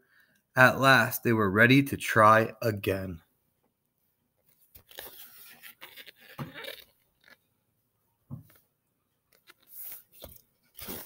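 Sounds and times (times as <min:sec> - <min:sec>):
book pages turning: 0:04.5 - 0:07.5, 0:09.3 - 0:11.0.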